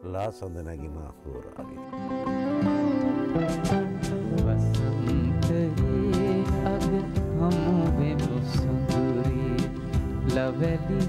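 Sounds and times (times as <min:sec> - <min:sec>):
man talking: 0:00.0 - 0:01.9
faint background music: 0:00.0 - 0:11.0
music recording: 0:00.0 - 0:11.0.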